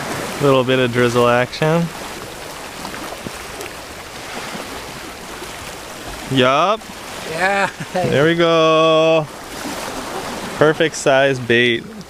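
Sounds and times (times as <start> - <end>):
sea water washing: 0.0 - 12.0.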